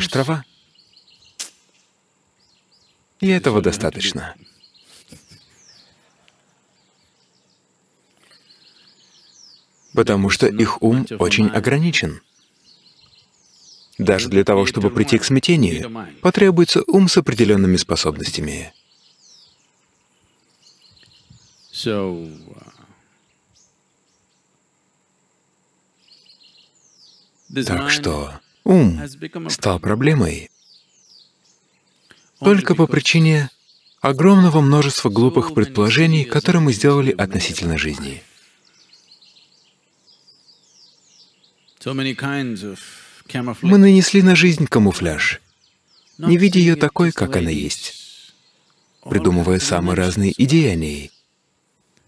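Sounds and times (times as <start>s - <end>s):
faint bird chirps: 0.0s - 24.7s, 25.8s - 52.0s
short hiss: 1.3s - 1.9s
faint steady high tone: 46.2s - 48.4s, 49.0s - 50.5s.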